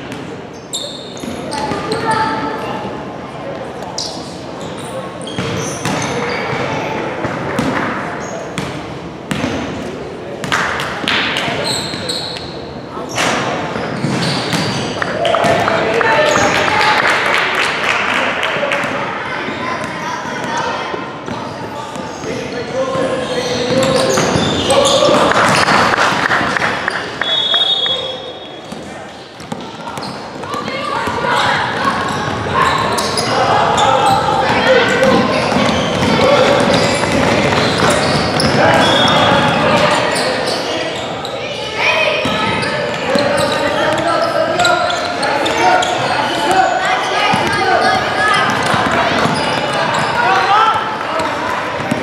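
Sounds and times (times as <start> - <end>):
echoing shouts and chatter: 0.0 - 52.0
basketball bouncing on hardwood floor: 35.1 - 38.6.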